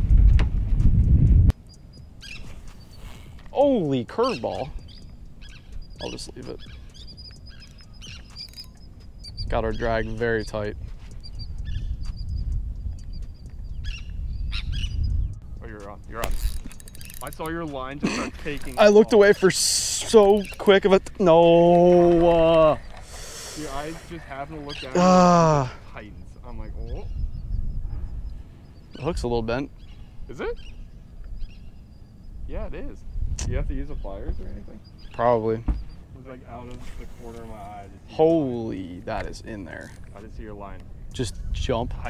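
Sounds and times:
wind buffeting microphone: 0.0s - 2.4s, 4.4s - 25.0s, 25.6s - 42.0s
birds chirping: 1.5s - 42.0s.

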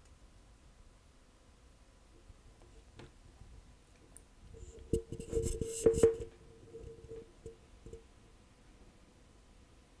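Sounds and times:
faint steady tone: 0.0s - 10.0s.

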